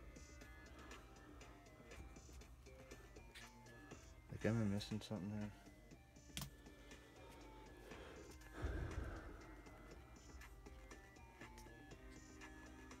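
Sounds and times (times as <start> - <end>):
faint background music: 0.0 - 13.0.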